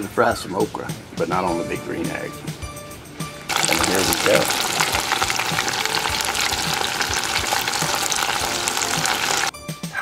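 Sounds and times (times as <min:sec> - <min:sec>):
food sizzling in hot oil: 0:03.5 - 0:09.6.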